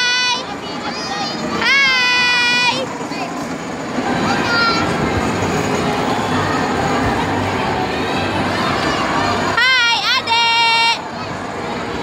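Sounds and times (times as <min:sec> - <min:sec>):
kiddie train motor and wheels: 0:00.0 - 0:12.0.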